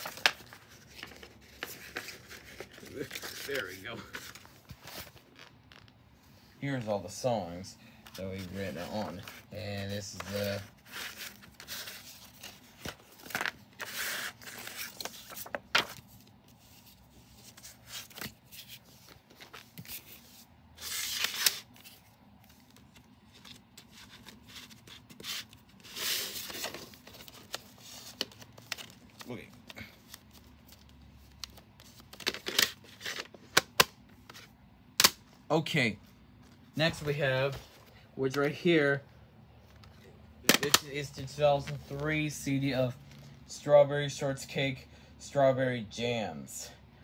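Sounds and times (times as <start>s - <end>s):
paper booklet pages rustling: 0.0s - 6.0s, 7.9s - 34.6s, 39.6s - 43.4s.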